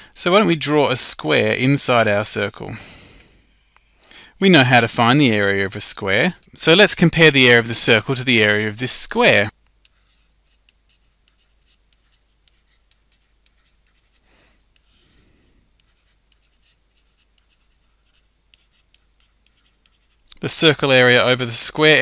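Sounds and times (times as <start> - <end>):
stylus scratching on pen tablet: 9.8 - 20.4.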